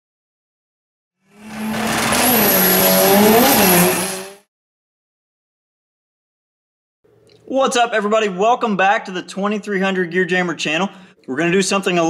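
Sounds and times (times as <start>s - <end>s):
race car engine: 1.3s - 4.5s.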